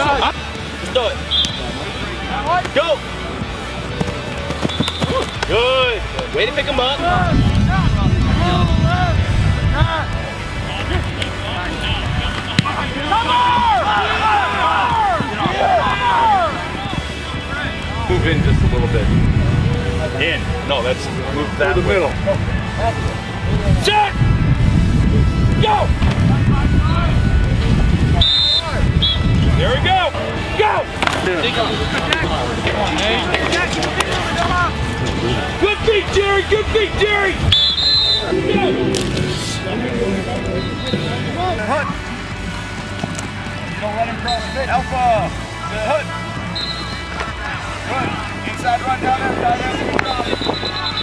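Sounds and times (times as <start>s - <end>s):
background music: 0.0s - 50.2s
whistle blast: 1.3s - 1.7s, 4.7s - 5.4s, 28.2s - 29.3s, 37.5s - 39.6s, 40.6s - 41.2s, 46.5s - 47.1s, 50.2s - 51.0s
football pads colliding: 3.8s - 6.6s, 12.3s - 16.9s, 31.0s - 31.3s
low rumble: 38.2s - 41.5s.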